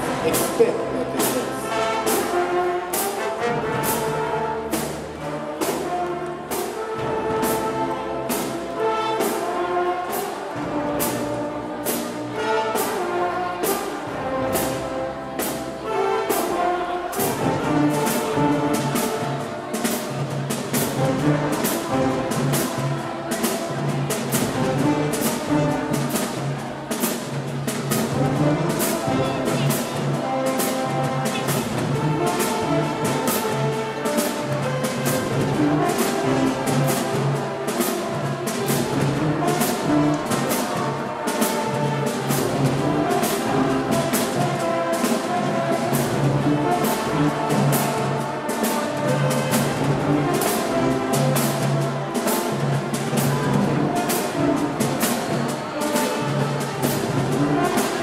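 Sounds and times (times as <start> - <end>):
brass horns: 0.0 - 58.0
steady drum beat: 0.0 - 58.0.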